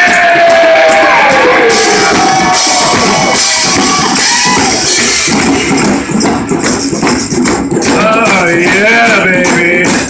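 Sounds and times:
barrel drum beaten: 0.0s - 10.0s
djembe drumming: 0.0s - 10.0s
rattling percussion: 0.0s - 10.0s.

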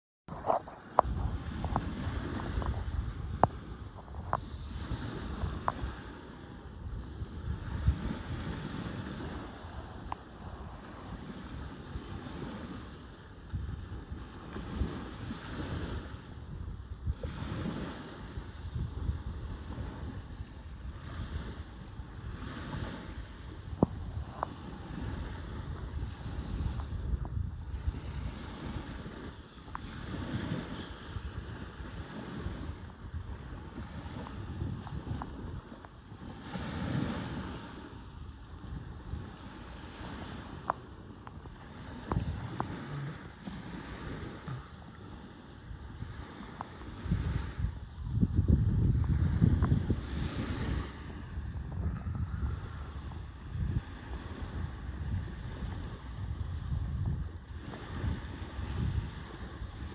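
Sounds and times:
wind buffeting microphone: 0.3s - 59.9s.

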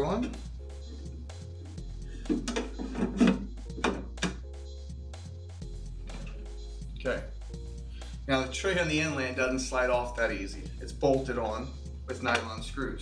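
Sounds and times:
background music: 0.0s - 13.0s
plastic tray knocks and scrapes: 2.3s - 4.4s.

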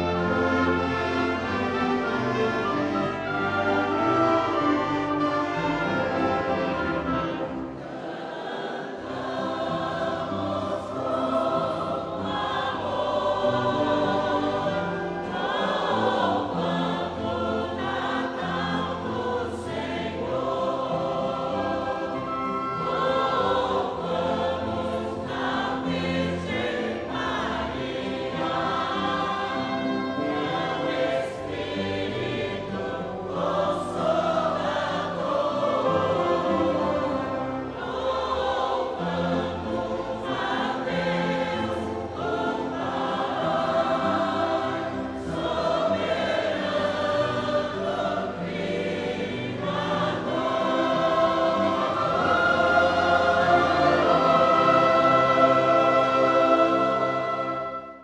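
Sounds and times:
choir singing a hymn: 0.0s - 58.0s
musical accompaniment: 0.0s - 58.0s.

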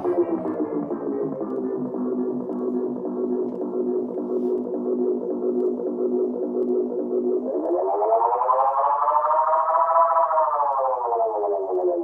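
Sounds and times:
tape echo feedback tone sweeping: 0.0s - 12.0s.

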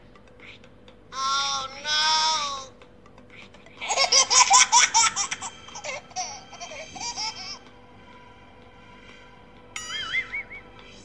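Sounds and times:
high-pitched giggling: 3.3s - 7.6s.

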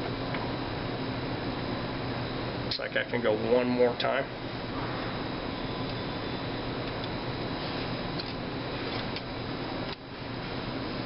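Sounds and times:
fan-like hiss: 0.0s - 11.0s.

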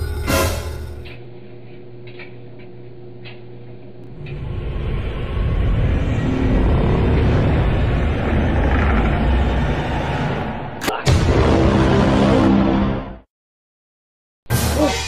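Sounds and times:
low rumble: 4.0s - 13.0s.

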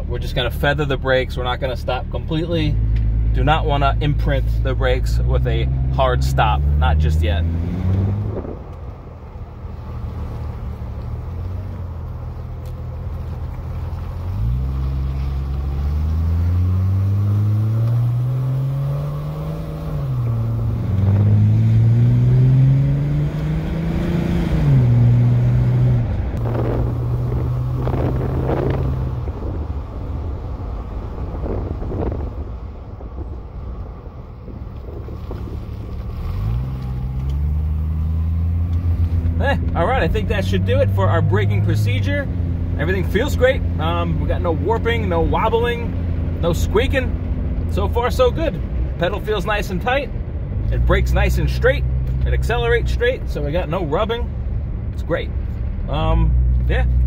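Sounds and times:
car engine accelerating: 0.0s - 57.0s.

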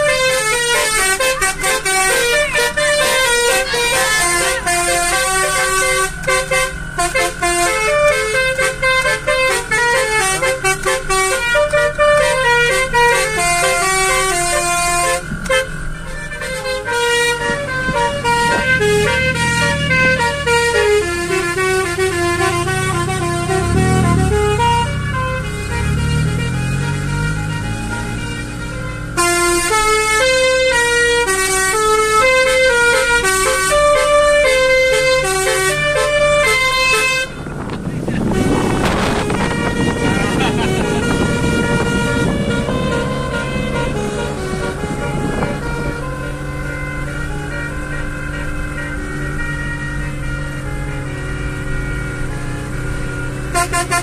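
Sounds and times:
multi-tone air horn tune: 0.0s - 54.0s.

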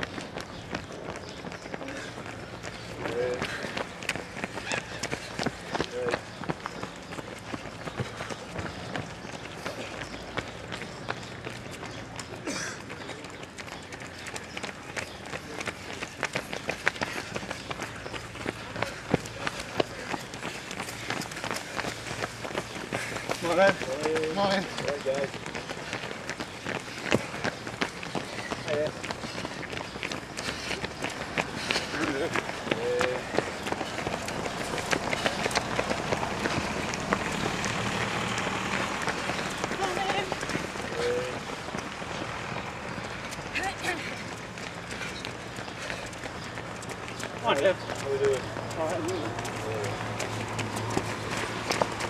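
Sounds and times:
runners' footsteps on pavement: 0.0s - 52.0s.

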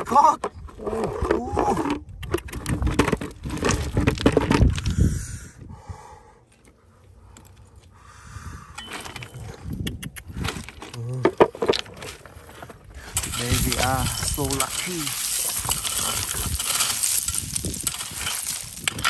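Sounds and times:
stones clicking and scraping: 0.0s - 5.1s, 8.8s - 19.0s.

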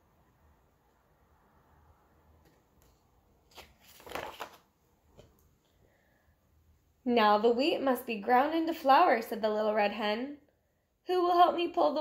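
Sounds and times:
book page turning: 2.8s - 5.3s.

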